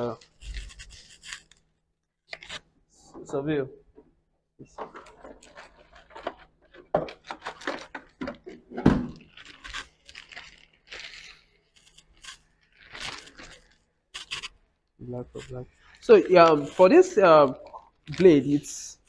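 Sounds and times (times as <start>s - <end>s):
plastic parts clicking and scraping: 0.0s - 3.4s, 4.7s - 14.6s.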